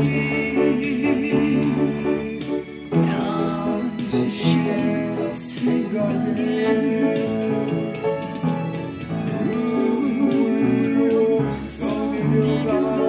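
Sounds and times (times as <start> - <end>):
person singing with vibrato: 0.0 - 13.0
upright piano ballad: 0.0 - 13.0.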